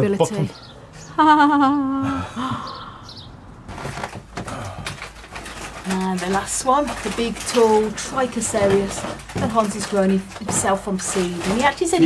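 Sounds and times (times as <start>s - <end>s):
knocks and bumps of handling: 3.7s - 12.0s.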